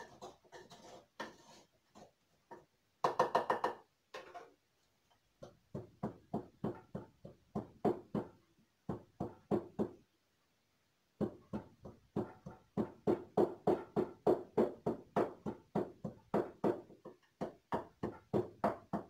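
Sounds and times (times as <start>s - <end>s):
wooden pestle pounding in mortar: 5.4s - 10.0s, 11.2s - 19.0s.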